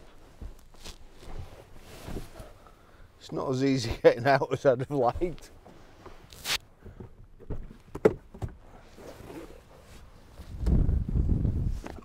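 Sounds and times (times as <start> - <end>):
clothing and upholstery rustling: 0.0 - 3.6, 8.6 - 12.0.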